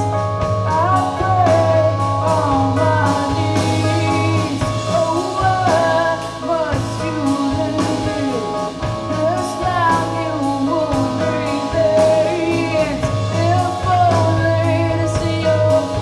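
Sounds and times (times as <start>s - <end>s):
drum kit: 0.0s - 16.0s
electric keyboard: 0.0s - 16.0s
woman singing: 0.0s - 16.0s.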